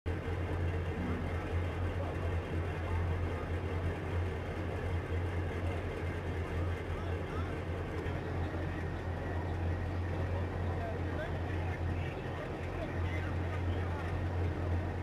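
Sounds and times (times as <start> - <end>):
diesel engine droning: 0.1 - 15.0.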